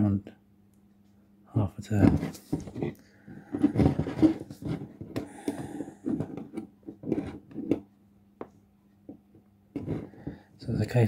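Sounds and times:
plastic clicks and scrapes: 0:02.0 - 0:07.9, 0:09.8 - 0:10.2.

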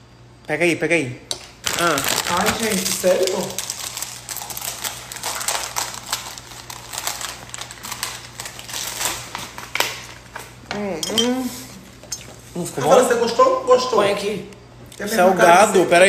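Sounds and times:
plastic packaging crinkling: 0:01.5 - 0:10.6
rice cake crunching: 0:01.6 - 0:10.4.

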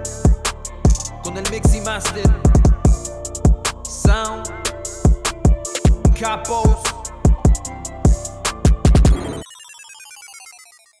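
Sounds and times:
hip hop beat with bass kicks: 0:00.0 - 0:09.6
falling electronic beeps: 0:07.4 - 0:11.0.

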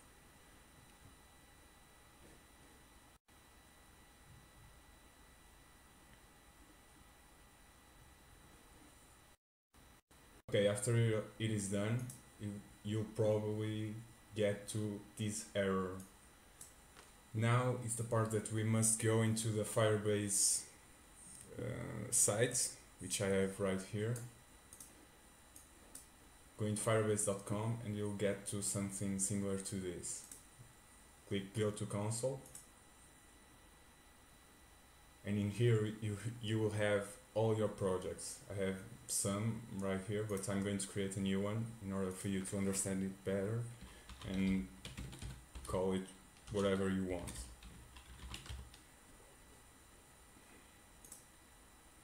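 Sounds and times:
keyboard keystrokes: 0:47.3 - 0:48.7.

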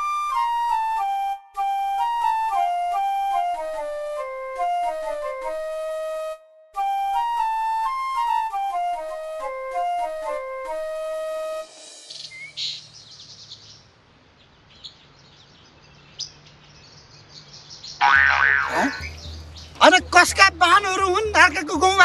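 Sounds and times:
flute melody: 0:00.0 - 0:12.6
birds chirping faintly: 0:09.8 - 0:22.0.

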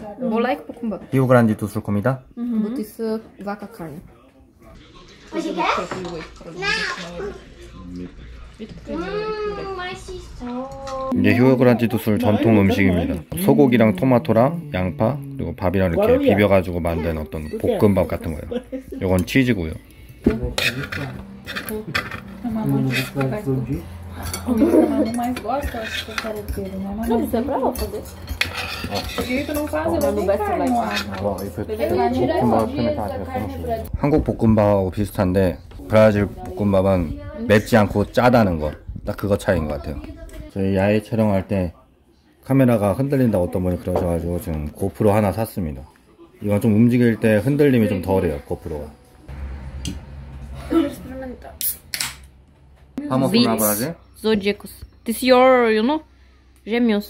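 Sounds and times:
fork scraping on glass plate: 0:20.5 - 0:23.4, 0:25.1 - 0:26.7, 0:27.8 - 0:31.6.

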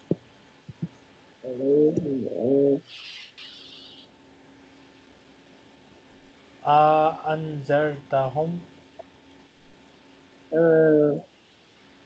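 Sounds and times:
dove cooing: 0:01.4 - 0:04.0
short hiss: 0:02.8 - 0:04.0.

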